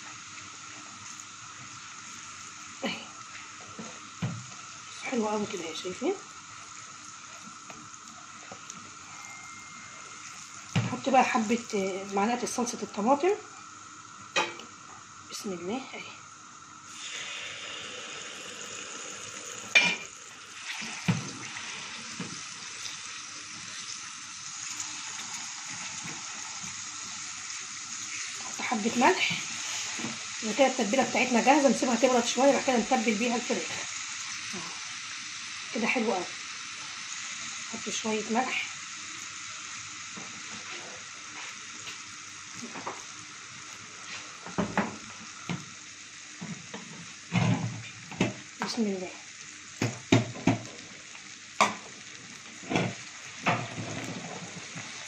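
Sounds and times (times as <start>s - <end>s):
spices sizzling in hot oil: 0.0s - 55.0s.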